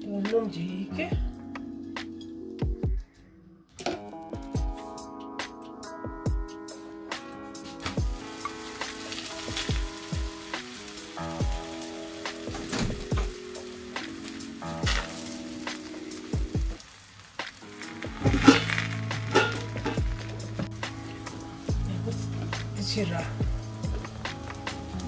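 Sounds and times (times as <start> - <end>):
background music with steady beat: 0.0 - 25.0
flatbread sizzling in a frying pan: 7.6 - 25.0.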